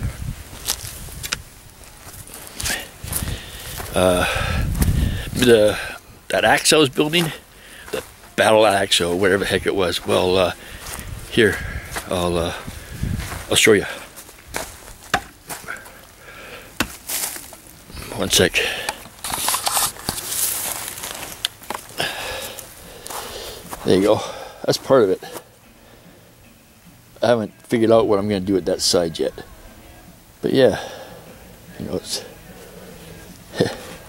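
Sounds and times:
footsteps: 0.0s - 25.6s.

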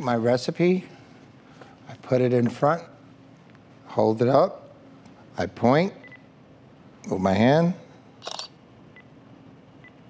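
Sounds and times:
camera shutter click: 8.2s - 8.5s.

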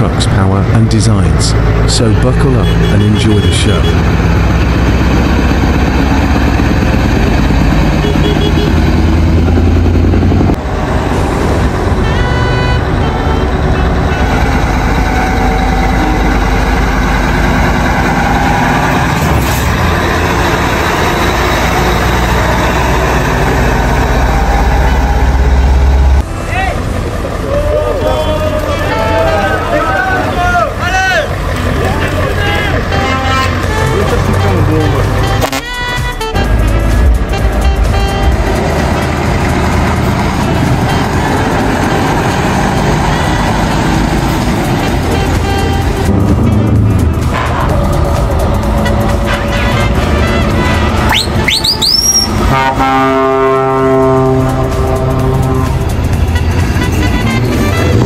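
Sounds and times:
people talking: 0.0s - 4.1s, 27.5s - 35.4s
truck diesel engines rumbling: 0.0s - 58.0s.

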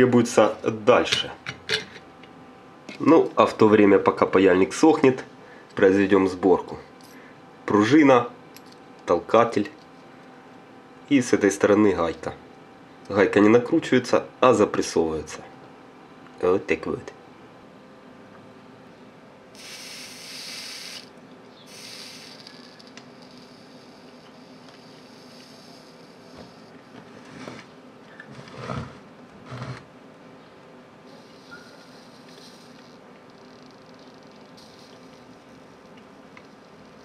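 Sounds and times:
faint steady hum: 0.0s - 37.0s
soldering iron sizzling: 19.6s - 26.9s, 31.1s - 37.0s.

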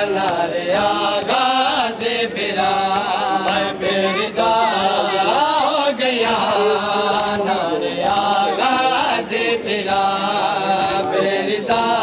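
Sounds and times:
men chanting lament: 0.0s - 12.0s.

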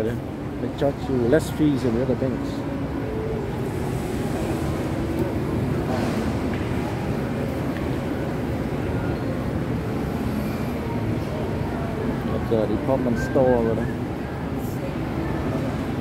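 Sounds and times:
faint indistinct voices: 0.0s - 16.0s.

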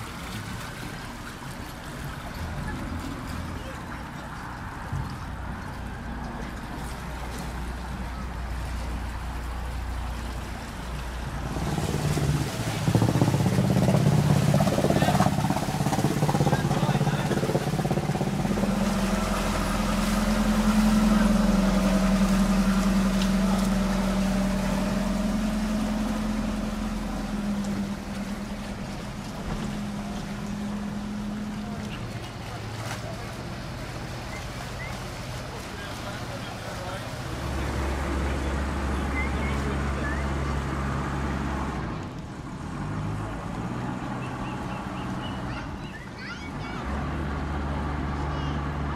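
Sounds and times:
boat engines humming: 0.0s - 48.9s.

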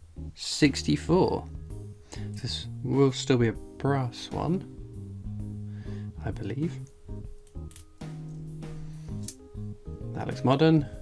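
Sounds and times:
coins clicking in fingers: 7.3s - 8.1s.

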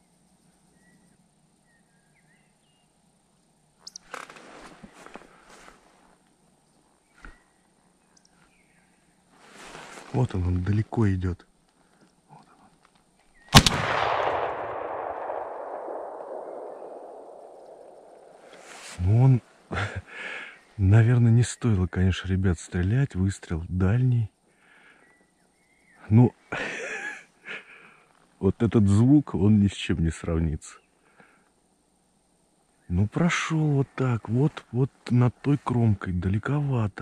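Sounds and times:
man speaking: 10.2s - 11.4s, 18.8s - 20.1s, 20.8s - 24.3s, 26.1s - 26.4s, 28.4s - 30.8s, 32.9s - 37.0s
loud shotgun shot: 13.5s - 18.5s
gunshot echo rolling away: 13.6s - 18.8s.

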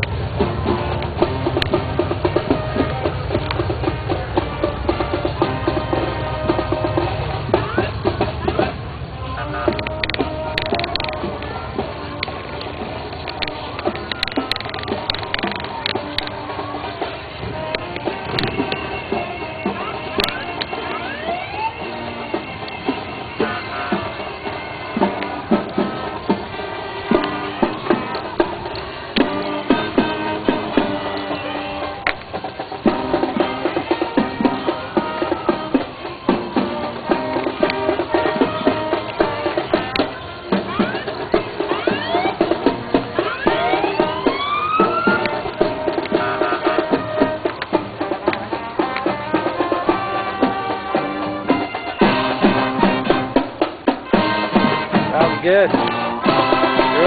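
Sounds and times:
music with drums and percussion: 0.0s - 57.0s.

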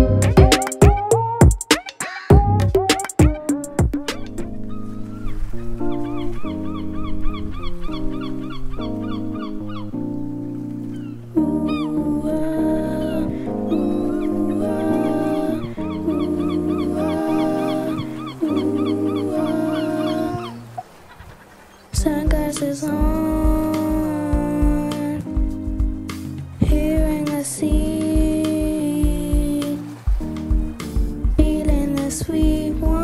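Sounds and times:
instrumental music: 0.0s - 20.6s, 22.0s - 33.0s.

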